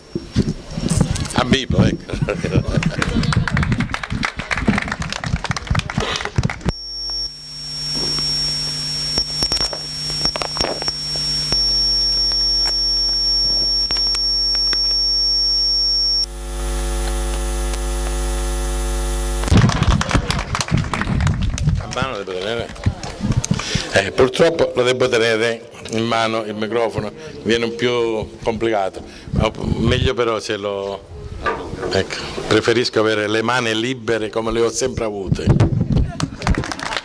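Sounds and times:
high whine: 0:00.0 - 0:22.4
microphone handling: 0:00.0 - 0:23.9, 0:35.3 - 0:36.6
electrical hum and buzz: 0:00.0 - 0:30.2.

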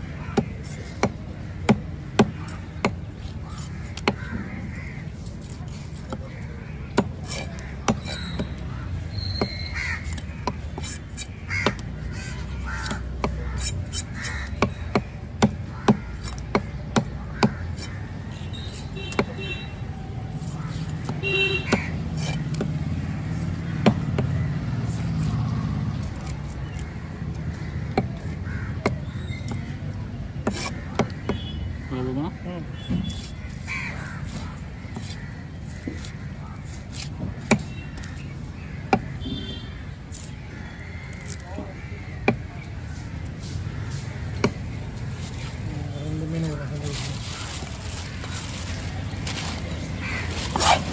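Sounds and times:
crows cawing: 0:00.0 - 0:50.9
cleaver chopping on wooden block: 0:00.1 - 0:04.6, 0:05.2 - 0:31.6, 0:32.8 - 0:43.4, 0:44.1 - 0:45.7.

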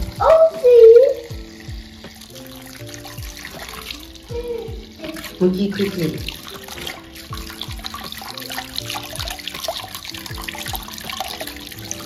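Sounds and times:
music with deep drum hits: 0:00.0 - 0:12.0
tap water running over hands: 0:00.0 - 0:12.0.

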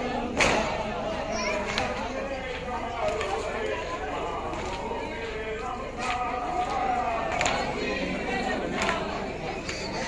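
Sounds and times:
crowd talking and calling: 0:00.0 - 0:10.0.

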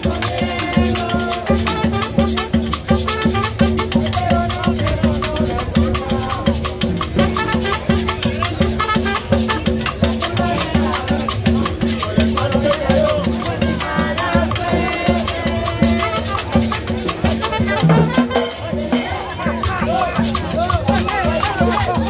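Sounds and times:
drums: 0:00.0 - 0:22.0
bass line: 0:00.2 - 0:22.0
trumpet melody: 0:00.8 - 0:06.4, 0:07.0 - 0:10.6, 0:14.9 - 0:18.9.

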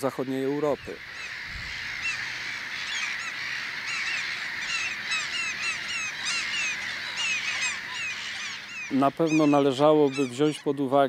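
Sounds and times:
gulls calling: 0:00.0 - 0:11.0.

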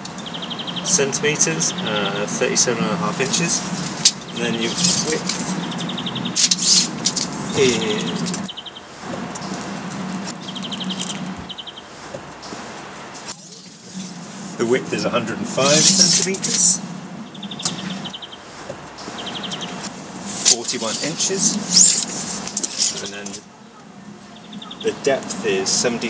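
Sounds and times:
faint outdoor background noise: 0:00.0 - 0:26.0
small bird trilling: 0:00.1 - 0:12.6, 0:15.6 - 0:18.4, 0:19.0 - 0:25.1
brief rustle: 0:19.8 - 0:23.5.

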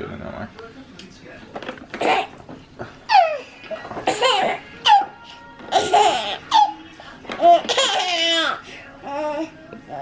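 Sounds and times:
baby laughing: 0:03.1 - 0:06.8, 0:07.4 - 0:08.6.

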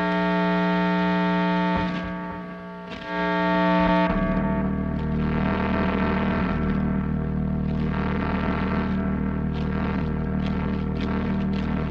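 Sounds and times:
fuzzed electric guitar note: 0:00.0 - 0:11.9.

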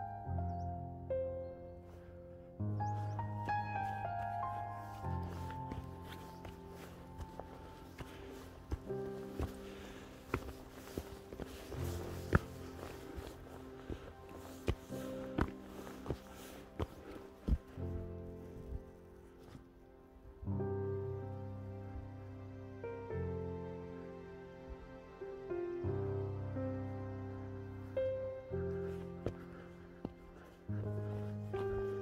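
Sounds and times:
soft background music: 0:00.0 - 0:32.0
footsteps on rocky path: 0:02.9 - 0:19.7, 0:28.7 - 0:32.0.

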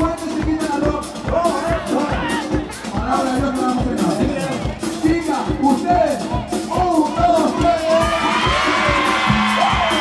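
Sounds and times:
latin dance band music: 0:00.0 - 0:10.0
crowd shouting along: 0:07.1 - 0:10.0.

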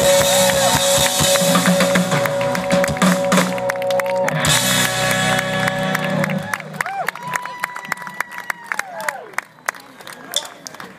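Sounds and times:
electric guitar: 0:00.0 - 0:06.8
live band playing amplified music: 0:00.0 - 0:07.7.

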